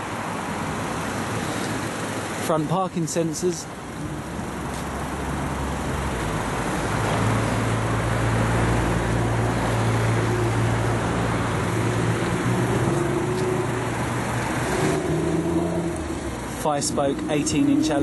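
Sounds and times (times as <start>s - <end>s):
road traffic noise: 0.0s - 18.0s.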